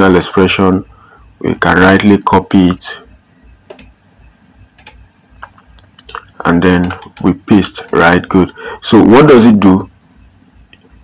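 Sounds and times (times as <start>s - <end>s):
faint background noise: 0.0s - 11.0s
computer mouse clicks: 3.6s - 4.0s, 4.8s - 8.0s, 10.7s - 11.0s.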